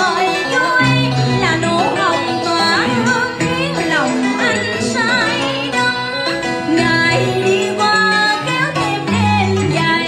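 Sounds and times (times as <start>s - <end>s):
backing music: 0.0s - 10.0s
woman singing into a microphone: 0.0s - 10.0s.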